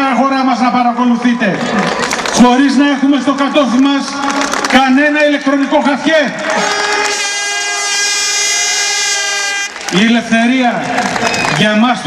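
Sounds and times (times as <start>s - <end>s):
horn blowing long note: 6.5s - 9.9s.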